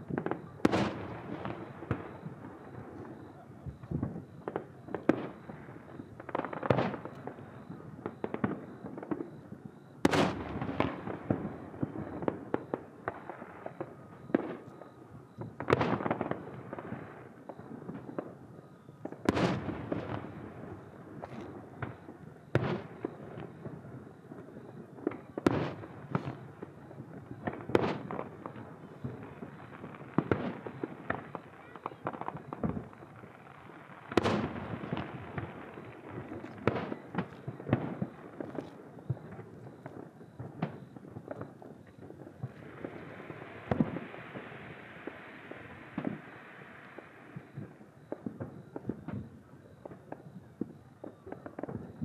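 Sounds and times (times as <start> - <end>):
fireworks pops and crackling: 0.0 - 52.0
fireworks shells booming: 0.0 - 52.0.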